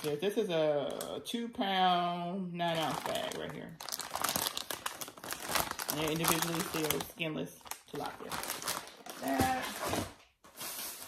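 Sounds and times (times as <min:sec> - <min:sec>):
plastic bag crinkling: 0:00.0 - 0:01.2, 0:02.6 - 0:11.0.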